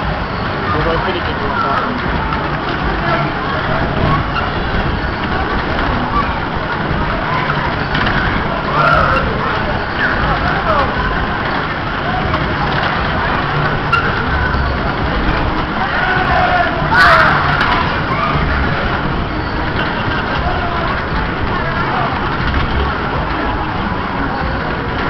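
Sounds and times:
ride cars rumbling: 0.0s - 25.0s
riders shouting and whooping: 2.8s - 22.3s.

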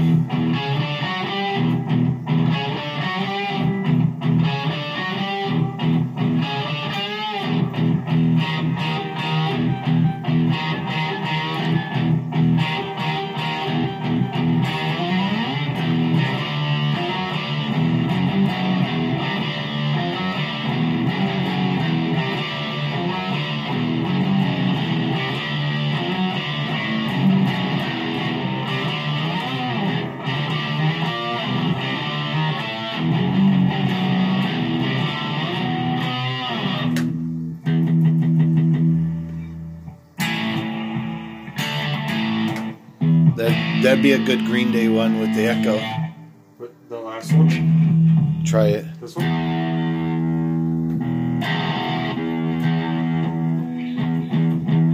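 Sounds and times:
electric guitar riffs: 0.0s - 54.9s.

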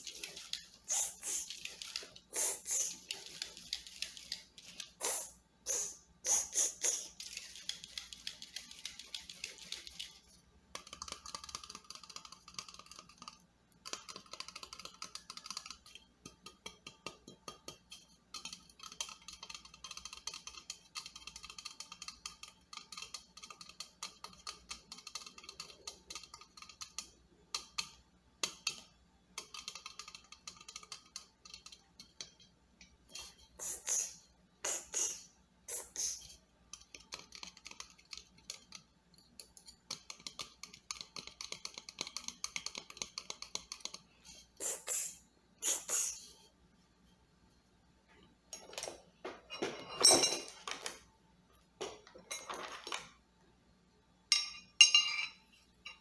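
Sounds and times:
fingernails tapping on spray can: 0.0s - 10.1s.

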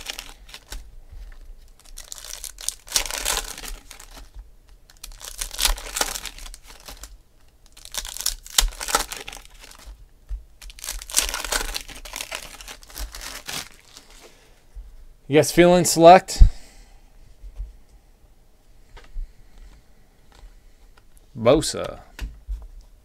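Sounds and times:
foil wrappers tearing and crinkling: 0.0s - 10.0s, 10.6s - 14.2s.

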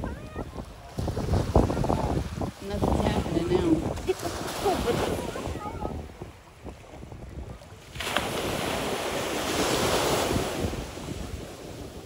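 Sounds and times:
small waves lapping at shore: 0.0s - 12.0s
wind rumble on microphone: 0.0s - 12.0s.

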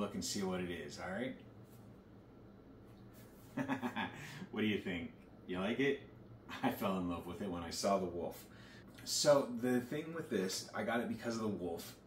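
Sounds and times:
man laughing: 3.5s - 4.5s, 6.5s - 6.8s.

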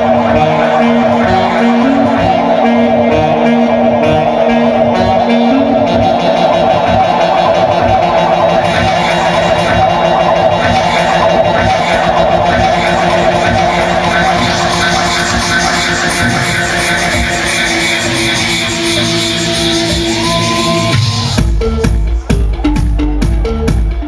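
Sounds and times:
loud club dance music: 0.0s - 24.0s.

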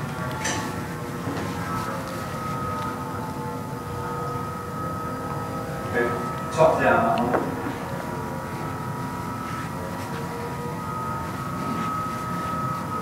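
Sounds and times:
small electric fan whirring: 0.0s - 13.0s.

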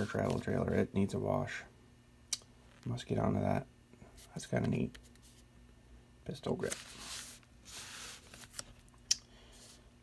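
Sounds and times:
paper rustling: 6.6s - 8.8s.

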